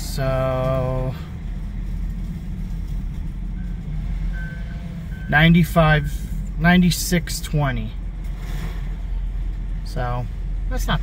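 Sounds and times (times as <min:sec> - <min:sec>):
truck engine idling: 0:00.0 - 0:11.0
reversing alarm beeps: 0:03.6 - 0:06.3.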